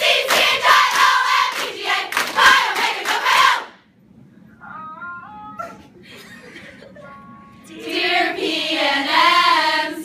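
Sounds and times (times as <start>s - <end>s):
women singing in harmony: 7.7s - 10.0s.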